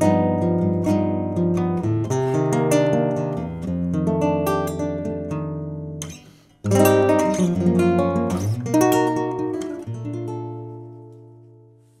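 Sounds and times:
nylon-string guitar plucked: 0.0 - 12.0.

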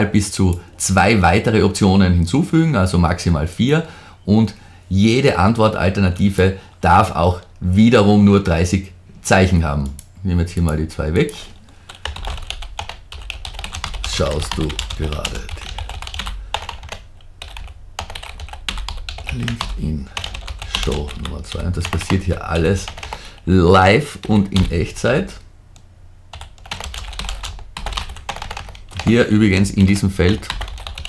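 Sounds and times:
rapid keyboard typing: 10.6 - 25.4, 26.3 - 31.0.

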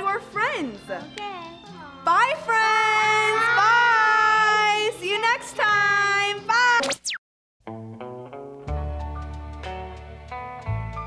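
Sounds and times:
backing music track: 7.7 - 11.0.

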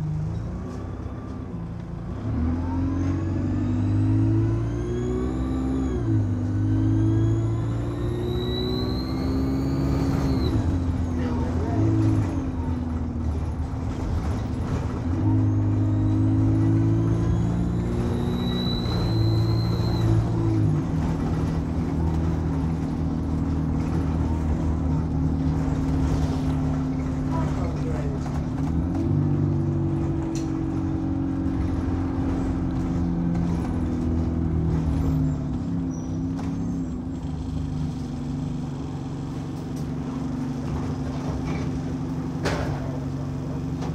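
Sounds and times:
turbocharger whine: 0.0 - 12.6, 14.2 - 40.1
diesel bus engine running: 0.0 - 43.9.

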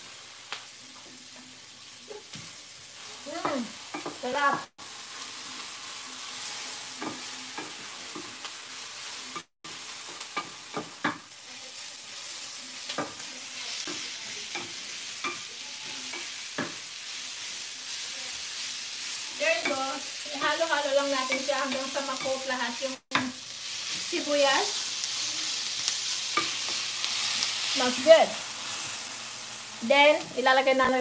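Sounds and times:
onions sizzling in oil: 0.0 - 31.0.

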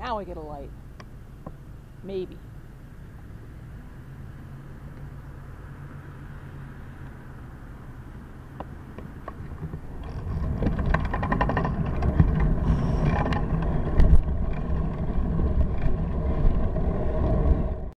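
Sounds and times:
road noise with rattles: 0.0 - 17.9
bicycle clicks: 8.6 - 17.6
wind on microphone: 9.3 - 17.9.

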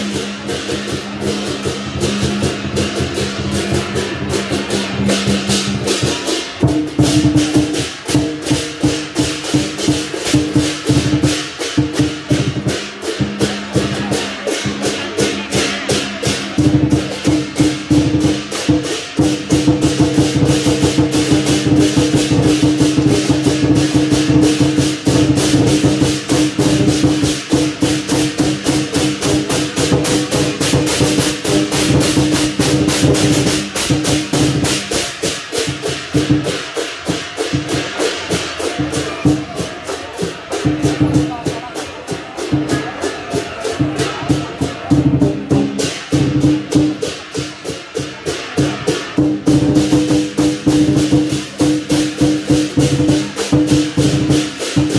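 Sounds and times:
drum cymbals and gong percussion: 0.0 - 54.9.

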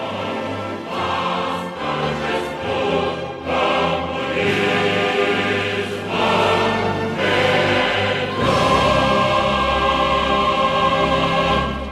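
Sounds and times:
choir singing: 0.0 - 11.9.

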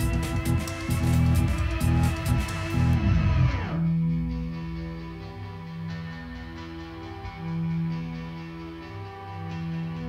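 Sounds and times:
electronic drums: 0.0 - 4.2.

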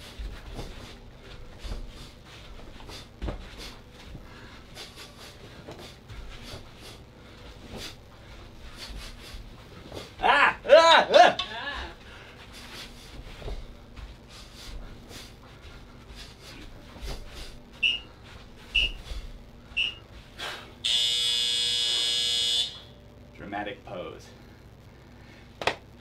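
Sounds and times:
bare feet thudding on mat: 0.0 - 10.3, 11.8 - 19.5
short high beeps: 19.8 - 20.0
loud buzzer: 20.8 - 23.0.

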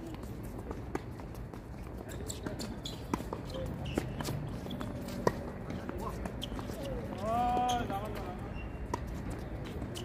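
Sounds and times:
tennis ball hit and bouncing: 0.1 - 8.2, 8.8 - 10.0.

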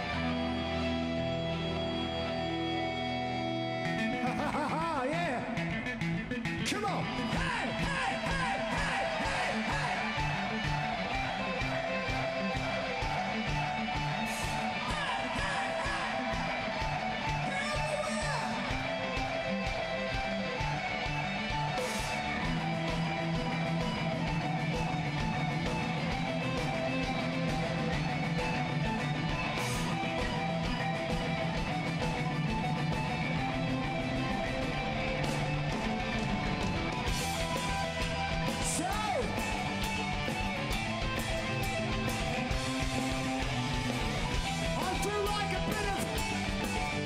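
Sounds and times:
bass guitar: 0.0 - 47.0
electric guitars: 0.0 - 47.0.

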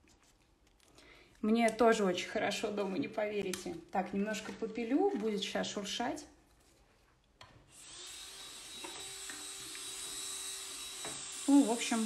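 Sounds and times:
electric nail drill whirring: 7.7 - 12.0.

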